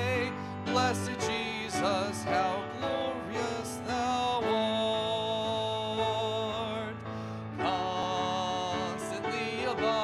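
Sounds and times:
congregation singing a hymn: 0:00.0 - 0:05.1, 0:07.6 - 0:10.0
man singing into a microphone: 0:00.0 - 0:10.0.

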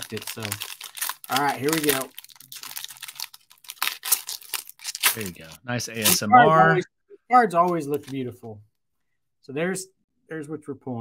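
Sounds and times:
foil pack tearing and crinkling: 0:00.0 - 0:06.3.

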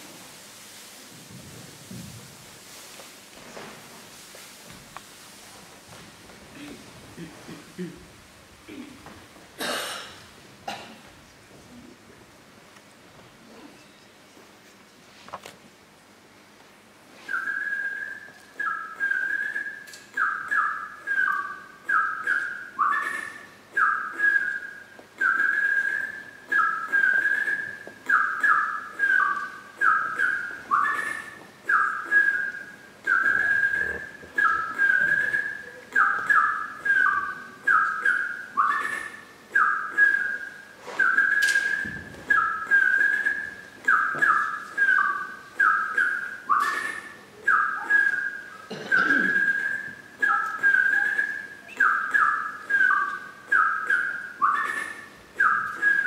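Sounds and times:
whistled tune: 0:17.2 - 0:56.0.

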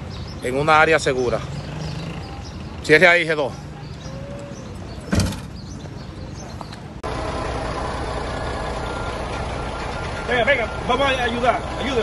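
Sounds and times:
truck engine idling: 0:03.6 - 0:12.0.

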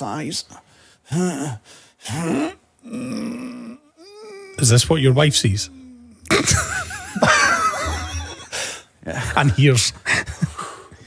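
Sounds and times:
man grunting and groaning: 0:01.1 - 0:04.8, 0:05.5 - 0:06.6.

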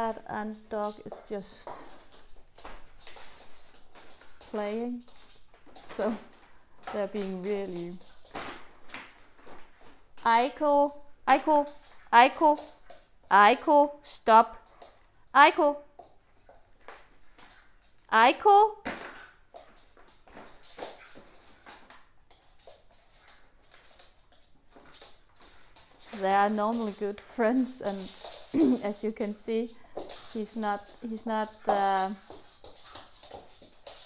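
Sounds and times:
animals scuffling and rustling: 0:00.0 - 0:10.2, 0:15.9 - 0:18.1, 0:18.8 - 0:34.0.

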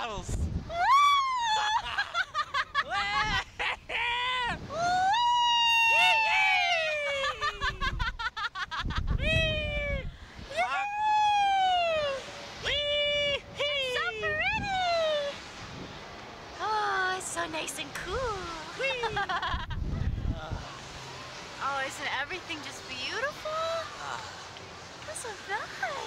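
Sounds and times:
wind buffeting microphone: 0:00.1 - 0:00.8, 0:04.4 - 0:05.2, 0:07.4 - 0:10.7, 0:12.0 - 0:20.7
whoops: 0:00.7 - 0:02.2, 0:02.9 - 0:07.7, 0:09.2 - 0:15.4
riders screaming and laughing: 0:00.7 - 0:15.4, 0:18.7 - 0:21.0.

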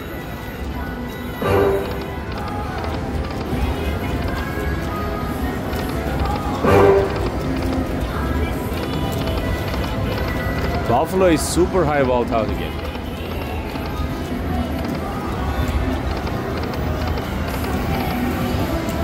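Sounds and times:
casino background hum: 0:00.0 - 0:19.0
slot machine game music: 0:00.0 - 0:19.0.

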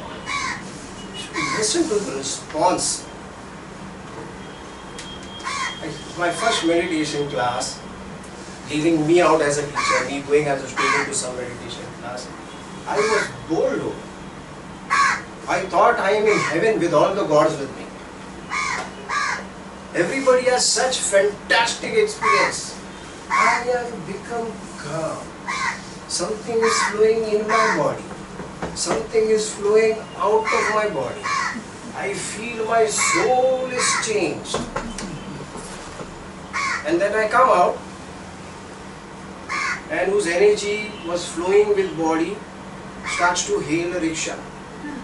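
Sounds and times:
crow cawing: 0:00.2 - 0:00.6, 0:05.4 - 0:05.8, 0:09.8 - 0:10.1, 0:10.8 - 0:11.1, 0:13.0 - 0:13.3, 0:14.9 - 0:15.3, 0:16.3 - 0:16.6, 0:18.5 - 0:19.5, 0:25.5 - 0:25.8, 0:26.6 - 0:27.8, 0:30.4 - 0:31.6, 0:33.0 - 0:34.0, 0:36.5 - 0:36.8, 0:39.5 - 0:39.9
harsh bird calls: 0:00.2 - 0:01.8, 0:05.4 - 0:06.7, 0:09.7 - 0:11.2, 0:12.8 - 0:13.4, 0:14.9 - 0:15.4, 0:16.2 - 0:16.7, 0:18.4 - 0:19.6, 0:23.3 - 0:23.8, 0:25.4 - 0:26.0, 0:26.6 - 0:27.9, 0:30.1 - 0:31.7, 0:32.9 - 0:34.2, 0:36.5 - 0:36.9, 0:39.5 - 0:39.9, 0:43.0 - 0:43.5.

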